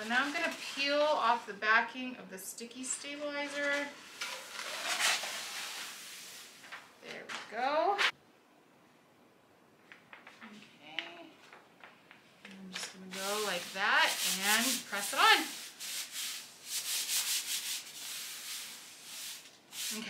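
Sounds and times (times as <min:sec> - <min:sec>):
wordless voice sound: 0:12.5 - 0:15.6.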